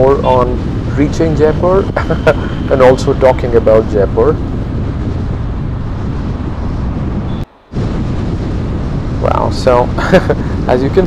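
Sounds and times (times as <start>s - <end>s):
car road and wind noise: 0.0s - 11.0s.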